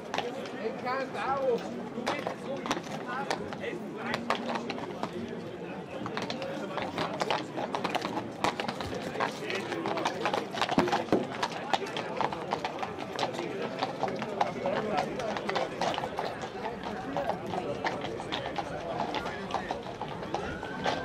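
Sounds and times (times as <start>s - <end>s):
crowd talking: 0.0s - 21.0s
hooves clopping on cobblestones: 0.0s - 21.0s.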